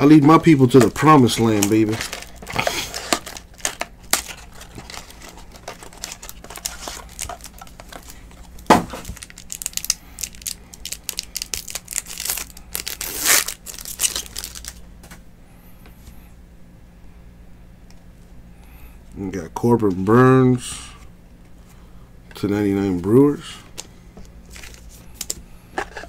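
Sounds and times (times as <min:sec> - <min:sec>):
foil pack crinkling and tearing: 0:00.3 - 0:14.8, 0:24.4 - 0:25.4.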